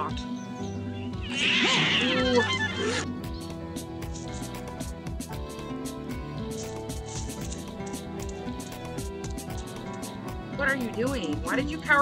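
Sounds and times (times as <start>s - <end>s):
background music: 0.0s - 12.0s
cartoon cat snarling: 1.3s - 3.0s.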